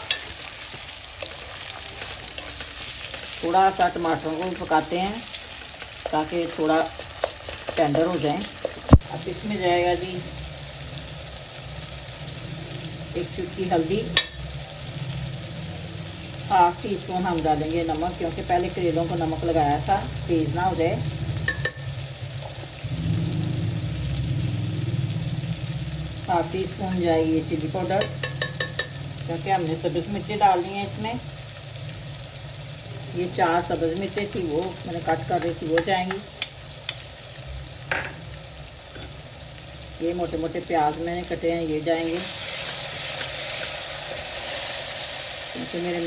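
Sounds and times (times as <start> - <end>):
tomatoes sizzling in hot oil: 0.0 - 46.0
low hum: 18.8 - 35.4.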